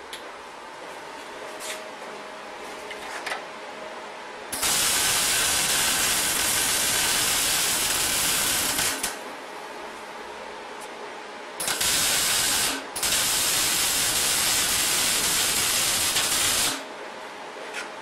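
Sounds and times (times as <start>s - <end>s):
welding arc crackling hiss: 4.6s - 9.2s, 11.6s - 16.9s.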